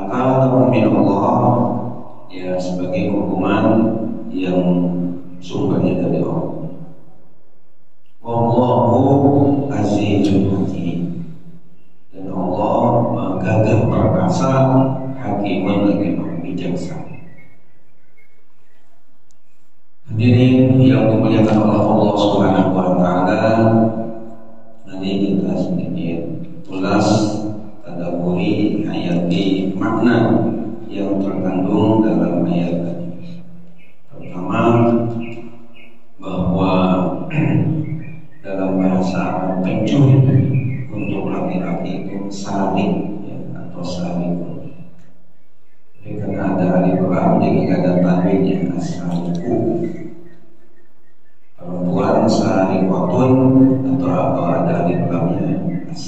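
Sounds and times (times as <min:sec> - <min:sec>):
man chanting into a microphone: 0:00.0 - 0:06.5, 0:08.2 - 0:11.1, 0:12.2 - 0:17.1, 0:20.1 - 0:24.0, 0:24.9 - 0:33.1, 0:34.1 - 0:35.1, 0:36.2 - 0:37.8, 0:38.4 - 0:44.6, 0:46.0 - 0:49.9, 0:51.6 - 0:56.0.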